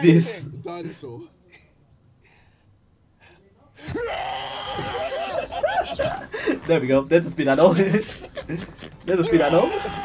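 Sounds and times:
person screeching: 3.8 - 5.6, 9.1 - 10.0
laughter: 5.0 - 6.7, 7.6 - 9.6.

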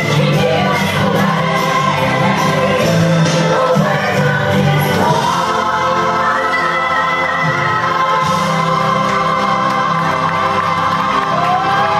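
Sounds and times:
gospel choir singing: 0.0 - 11.9.

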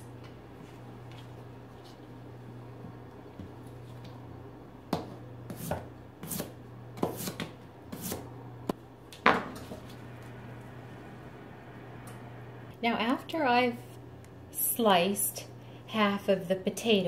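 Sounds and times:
knife slicing potatoes: 5.0 - 8.3.

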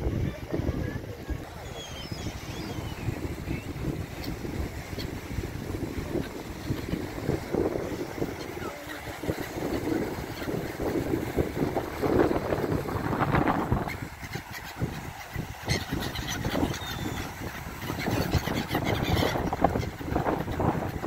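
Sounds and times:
gulls calling: 0.0 - 21.0
wind gusting on microphone: 0.0 - 21.0.

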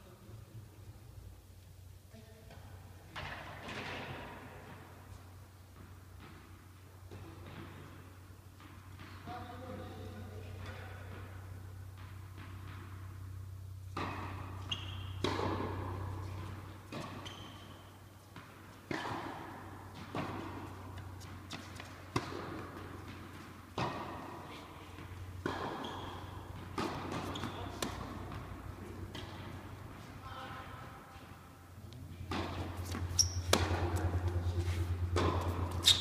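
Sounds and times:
tennis balls struck by rackets: 2.5 - 9.4, 10.2 - 36.0
tennis balls bouncing on court: 2.5 - 36.0
steady low hum: 9.6 - 36.0.

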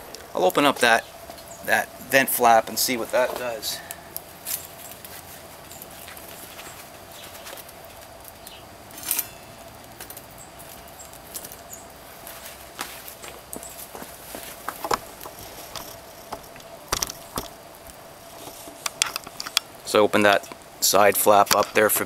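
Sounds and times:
wood fire crackling: 0.0 - 22.0.

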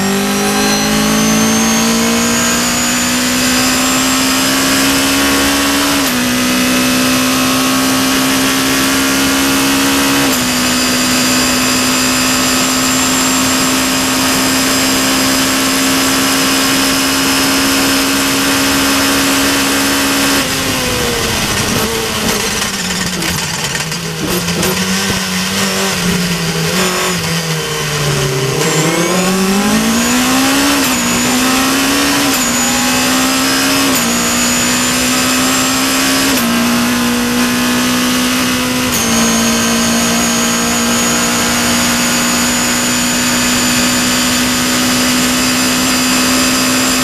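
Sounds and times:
car engine accelerating through gears: 0.0 - 47.0.

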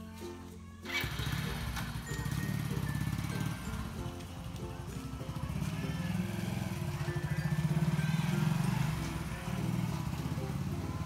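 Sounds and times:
plucked background music: 0.0 - 11.0
motorbike engine running: 0.8 - 11.0.

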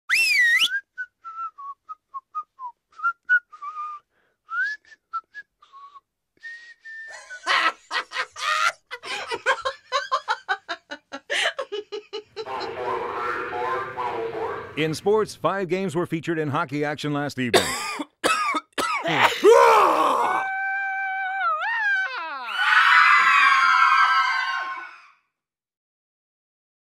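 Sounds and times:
person whistling: 0.1 - 7.4
laughter: 7.1 - 12.6
person coughing: 17.5 - 19.5
falling voiced sounds: 19.4 - 25.0
high-pitched screams: 19.4 - 25.2.

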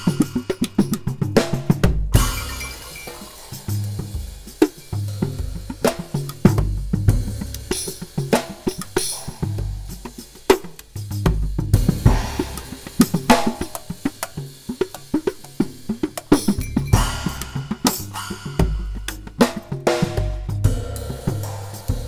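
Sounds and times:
drum strokes: 0.0 - 22.0
cymbal ringing: 2.2 - 6.3, 16.4 - 19.5.

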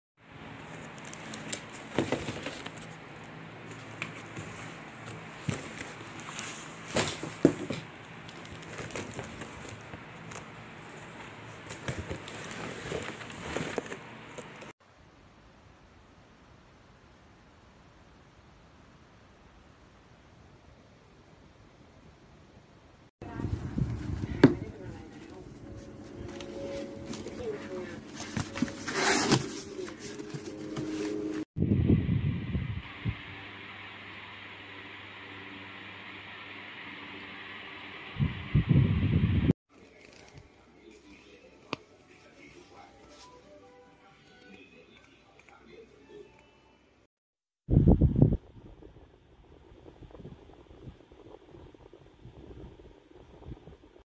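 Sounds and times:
handling cardboard box: 0.6 - 14.7, 26.4 - 31.4
plastic wrap rustling: 0.6 - 14.7, 24.3 - 31.4.

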